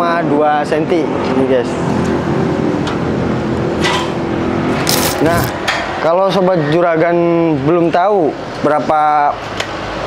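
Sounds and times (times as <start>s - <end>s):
vehicle engine and road noise: 0.3s - 10.0s.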